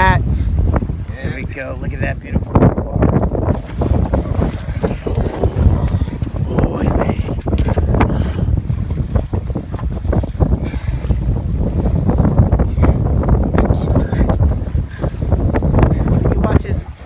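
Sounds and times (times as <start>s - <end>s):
water washing around hull: 0.0s - 17.0s
wind buffeting microphone: 0.0s - 17.0s.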